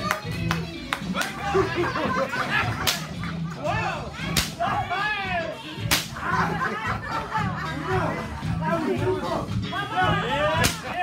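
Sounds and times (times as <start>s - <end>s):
rope cracking like a whip: 4.3s - 4.6s, 5.9s - 6.2s, 10.6s - 11.0s.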